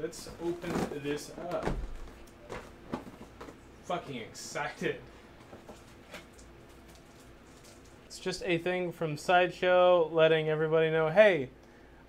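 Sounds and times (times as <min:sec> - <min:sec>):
cardboard and paper rustling: 0:00.3 - 0:03.6.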